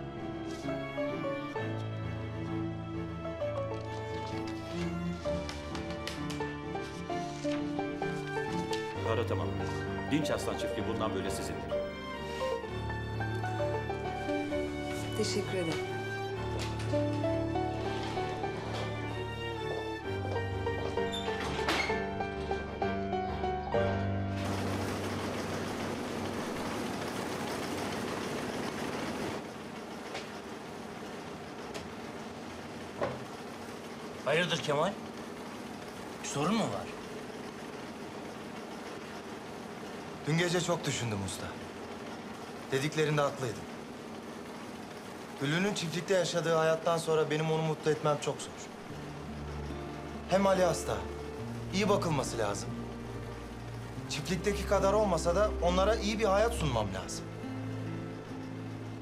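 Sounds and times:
instrumental background music: 0.0 - 26.8, 44.6 - 59.0
machines clattering rhythmically: 21.9 - 59.0.

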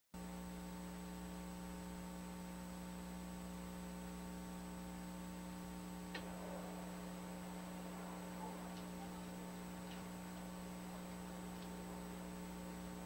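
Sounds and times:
electrical mains hum: 0.2 - 13.0
low hiss: 0.2 - 13.0.

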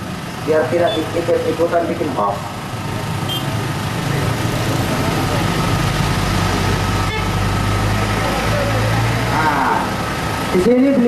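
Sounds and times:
idling engine hum: 0.0 - 11.0.

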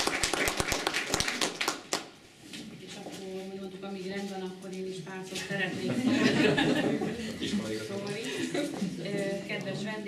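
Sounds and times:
small group clapping: 0.0 - 2.2.

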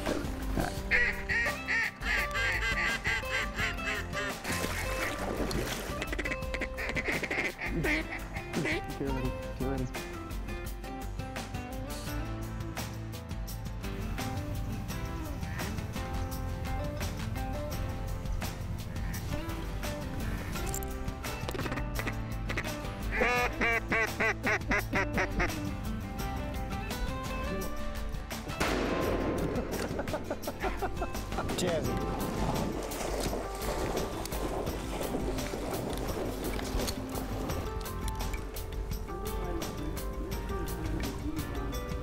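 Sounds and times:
background music: 0.0 - 42.0
duck quacking: 0.6 - 5.1, 6.0 - 8.9, 21.7 - 25.6.

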